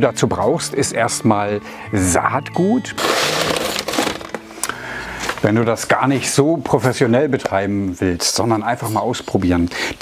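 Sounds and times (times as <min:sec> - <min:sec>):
paper sack rustling: 0:03.0 - 0:04.5.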